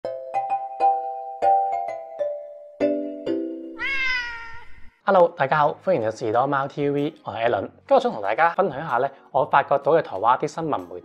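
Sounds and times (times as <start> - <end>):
cat meowing: 3.8 - 5.0.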